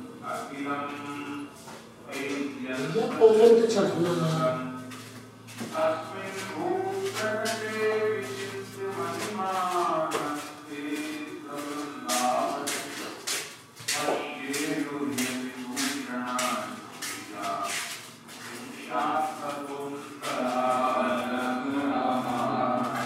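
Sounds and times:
voices chanting held notes: 0.0s - 13.4s, 14.0s - 23.0s.

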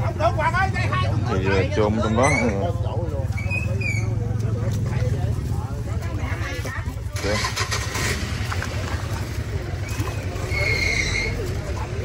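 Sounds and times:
engine humming: 0.0s - 12.0s
people's voices: 0.0s - 12.0s.

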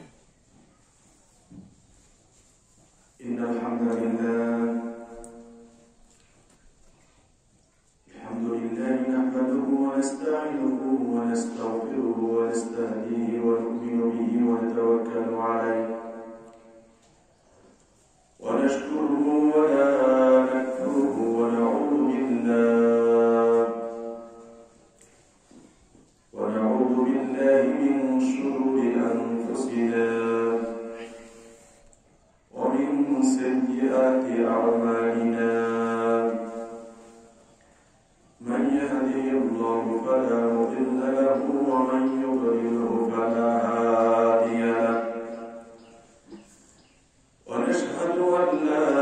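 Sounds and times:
man chanting through a microphone: 3.1s - 6.2s, 8.0s - 17.8s, 18.4s - 46.6s, 47.4s - 49.0s.

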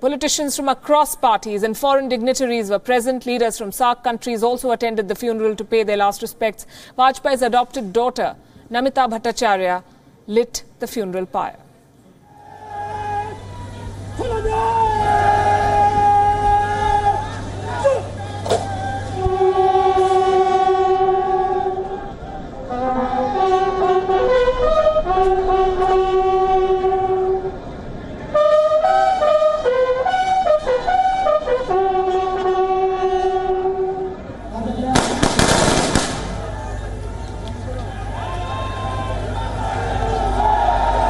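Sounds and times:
ceremonial horn notes: 12.2s - 34.5s
low steady rumble: 12.2s - 41.0s
sharp crack: 34.9s - 36.5s
rifle volley: 35.0s - 36.5s.

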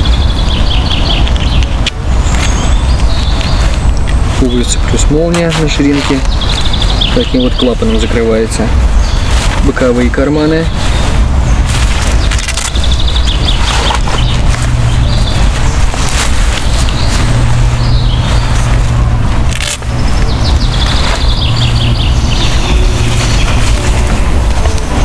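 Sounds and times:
small birds chirping: 0.0s - 25.0s
steady low rumble: 0.0s - 25.0s.

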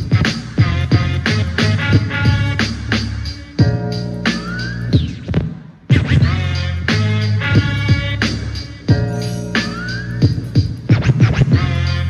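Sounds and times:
hip-hop beat: 0.0s - 12.0s
turntable scratching: 0.0s - 12.0s.

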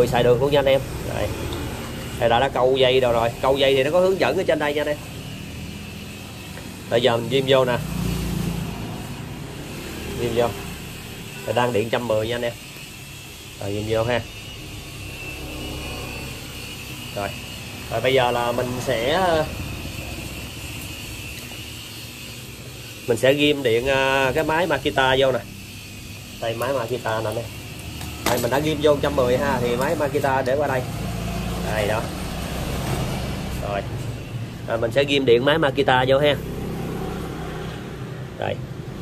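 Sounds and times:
vehicle engine hum: 12.7s - 26.6s.

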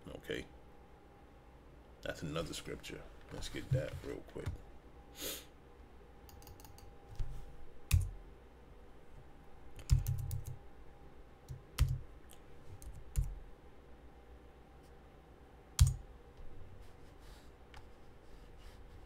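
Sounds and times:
computer keyboard keystrokes: 6.3s - 6.9s, 7.9s - 8.1s, 9.8s - 10.6s, 11.5s - 13.3s, 15.8s - 16.0s.

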